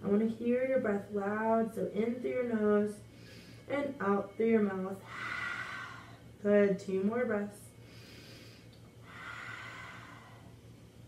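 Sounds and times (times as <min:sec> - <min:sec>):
woman breathing deeply: 0:03.0 - 0:03.7, 0:05.0 - 0:06.4, 0:07.7 - 0:10.9.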